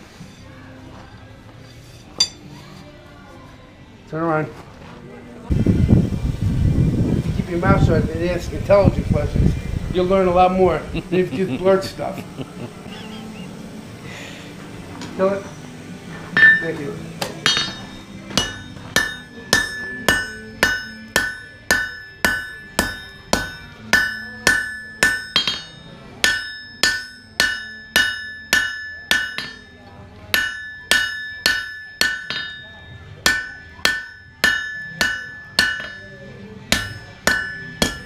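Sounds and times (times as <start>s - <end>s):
hammer striking steel on anvil: 1.8s - 2.5s, 16.3s - 38.0s.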